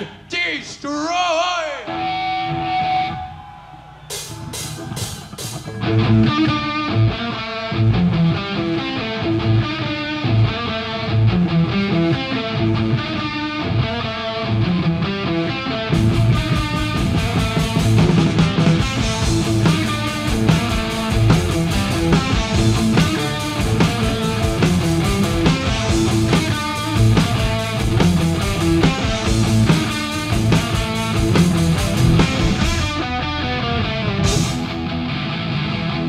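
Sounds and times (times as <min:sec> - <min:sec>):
distorted electric guitar riffing: 0:01.6 - 0:36.0
metal band playing live: 0:01.8 - 0:36.0.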